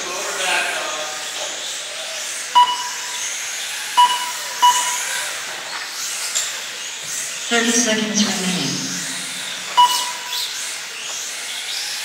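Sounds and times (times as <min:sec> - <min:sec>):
rc cars running: 0:00.0 - 0:12.0
short electronic beeps: 0:02.6 - 0:03.2, 0:04.0 - 0:05.2, 0:09.0 - 0:10.4.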